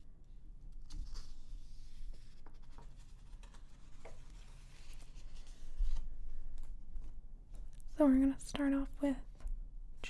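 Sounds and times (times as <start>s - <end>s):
magazine pages turning: 0.7s - 6.2s
paper ticks and crinkles: 0.7s - 8.6s.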